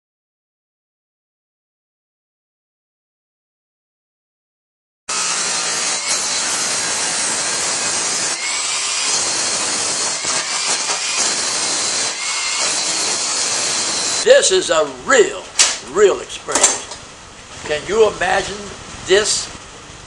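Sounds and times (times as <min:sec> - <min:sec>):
angle grinder grinding metal: 0:05.1 - 0:14.3.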